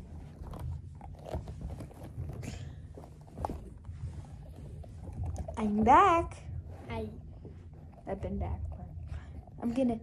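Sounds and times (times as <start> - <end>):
fabric rustling and scraping: 0.0 - 9.0.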